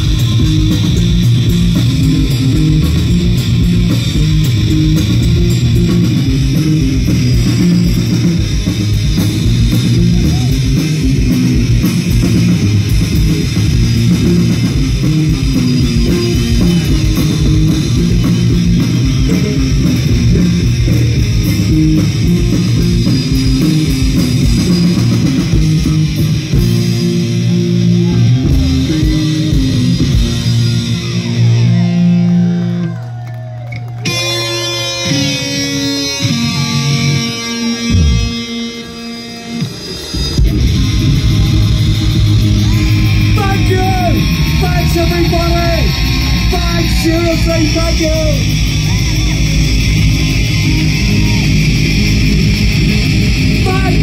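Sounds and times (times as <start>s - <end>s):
bass guitar: 0.0s - 54.0s
drums: 0.0s - 54.0s
electric guitar: 0.0s - 54.0s.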